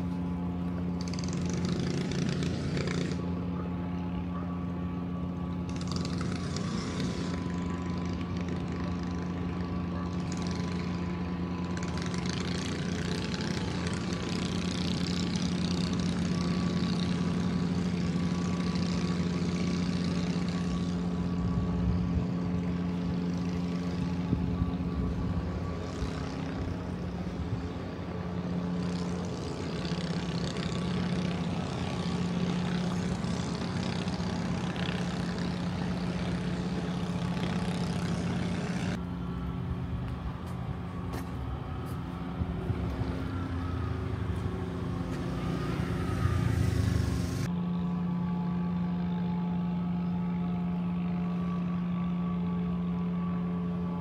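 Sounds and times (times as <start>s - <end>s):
outdoor noise: 0.0s - 54.0s
vehicle engines idling: 0.0s - 54.0s.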